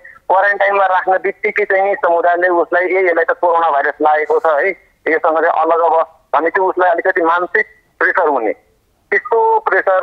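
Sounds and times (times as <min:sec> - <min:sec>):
man speaking over telephone: 0:00.0 - 0:10.0.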